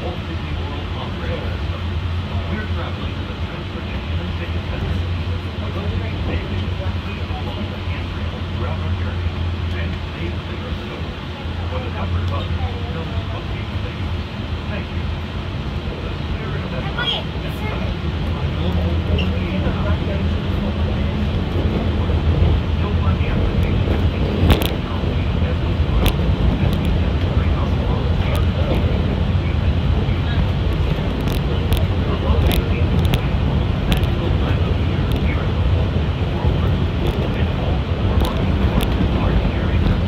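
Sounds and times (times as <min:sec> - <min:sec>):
monorail running gear rumble: 0:00.0 - 0:40.0
sharp clicks and rattles: 0:23.5 - 0:24.9, 0:25.9 - 0:27.4, 0:30.5 - 0:40.0.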